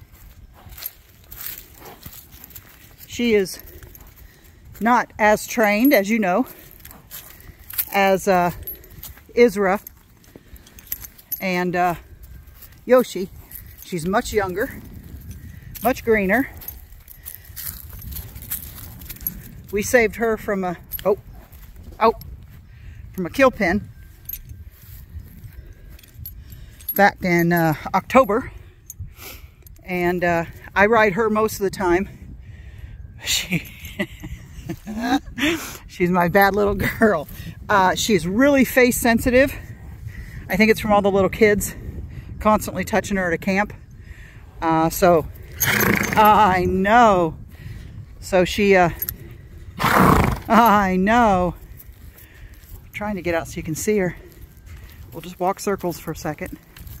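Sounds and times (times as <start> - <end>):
horse rustling and thudding: 0.0 - 22.7
metallic halter clinks: 0.0 - 44.0, 44.6 - 57.0.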